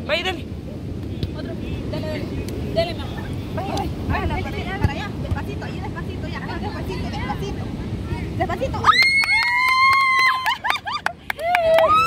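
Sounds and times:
women squealing: 8.8 - 12.0.

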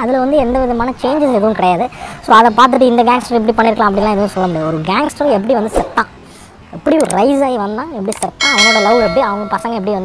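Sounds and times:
bright bell chime: 8.4 - 10.0
person talking: 8.4 - 10.0.

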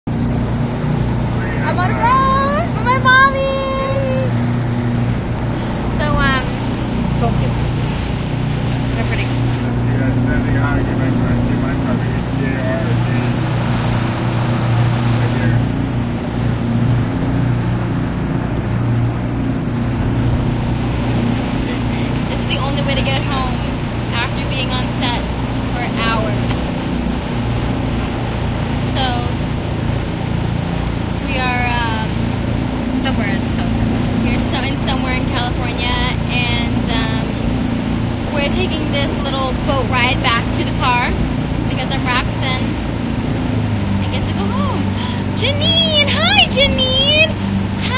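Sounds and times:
outboard motor droning: 0.0 - 47.9
wind and water rushing: 0.0 - 47.9.

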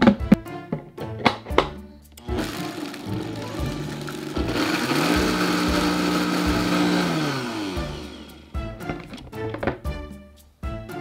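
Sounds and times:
blender motor whining: 2.2 - 8.6.

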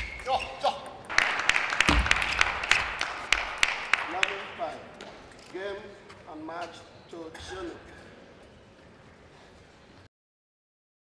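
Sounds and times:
crowd applauding: 1.1 - 4.5
sharp individual hand claps: 1.1 - 5.2.

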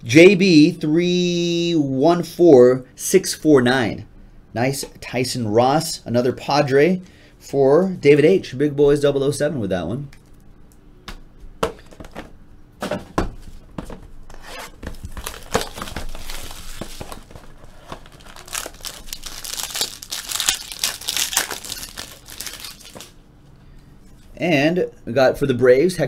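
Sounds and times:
plastic wrap crinkling and tearing: 14.7 - 23.2.

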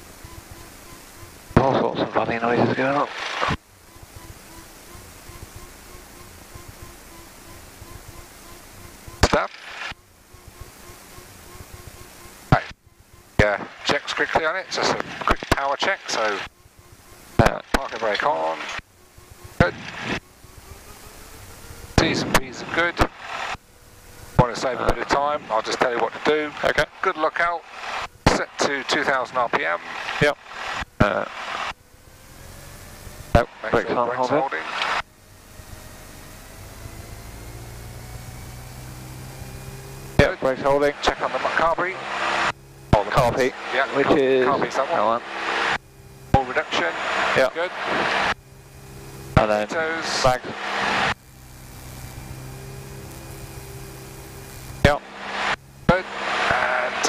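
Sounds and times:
aircraft piston engine hum: 0.0 - 57.0
voices talking in cockpit: 0.4 - 23.6, 24.2 - 31.8, 33.2 - 36.2, 40.1 - 51.2, 54.8 - 57.0.

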